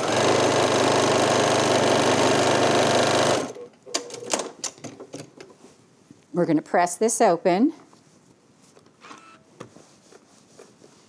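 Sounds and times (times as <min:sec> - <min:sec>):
fabric rustle: 0:07.9 - 0:08.9, 0:09.5 - 0:11.0.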